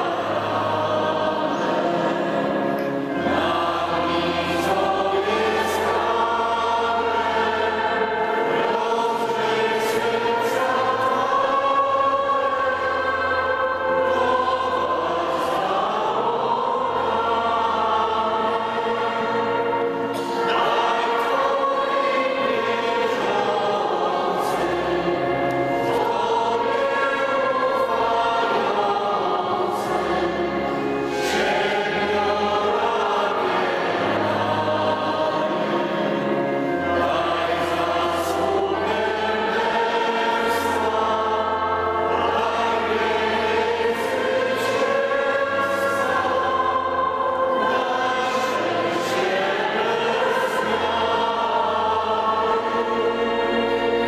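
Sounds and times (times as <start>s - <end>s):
congregation singing a slow hymn: 0.0s - 54.0s.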